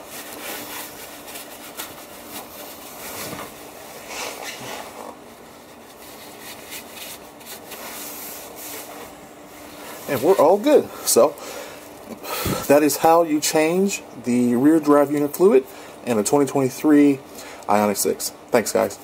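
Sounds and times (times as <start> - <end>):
paper towel rubbing on metal: 0.0 - 3.4.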